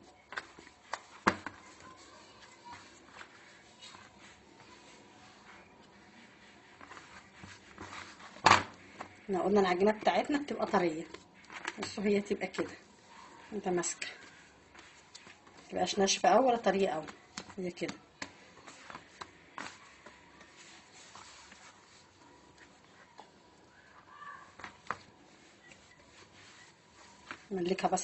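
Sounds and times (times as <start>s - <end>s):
hands kneading dough: 0.0s - 28.0s.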